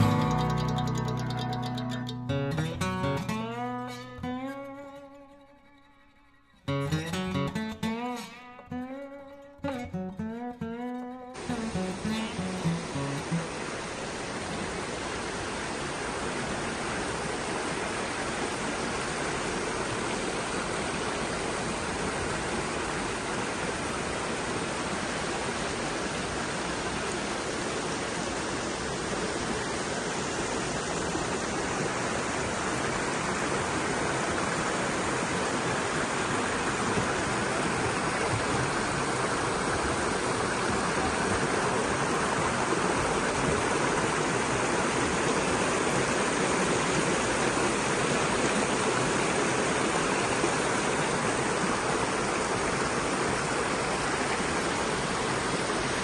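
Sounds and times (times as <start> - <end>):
water rushing down a cascade: 0.0 - 5.0, 6.7 - 10.8, 11.4 - 56.0.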